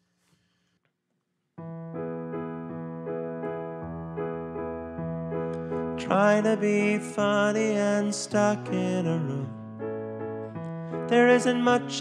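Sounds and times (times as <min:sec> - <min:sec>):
sustained piano chords: 0:01.6 - 0:12.0.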